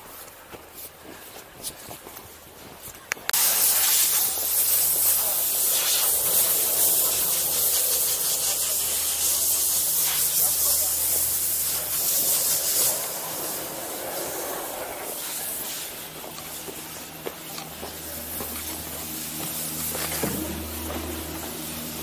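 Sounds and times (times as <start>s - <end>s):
snowboard scraping over snow: 3.4s - 22.0s.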